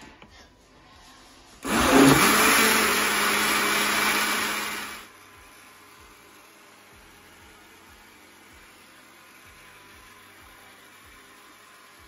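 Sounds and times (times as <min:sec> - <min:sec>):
blender motor running: 0:01.6 - 0:12.0.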